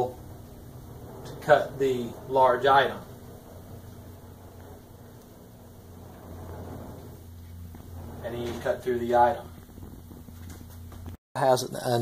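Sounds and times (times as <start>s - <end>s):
sliding saw table rumble: 0.0s - 11.2s
steady low hum: 0.0s - 12.0s.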